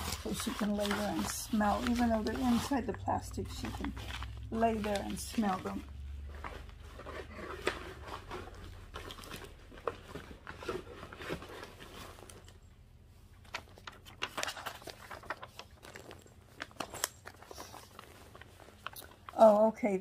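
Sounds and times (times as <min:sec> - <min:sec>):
plastic bags and paper crinkling: 0:00.0 - 0:20.0.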